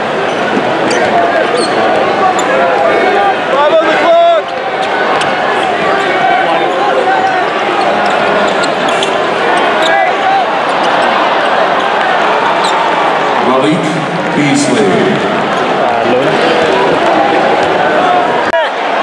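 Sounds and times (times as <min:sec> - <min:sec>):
arena crowd chatter: 0:00.0 - 0:19.0.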